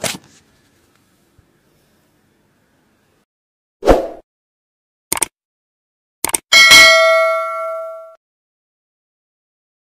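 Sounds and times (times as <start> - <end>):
double mouse click: 6.2 - 6.4
bright bell ding: 6.5 - 8.2.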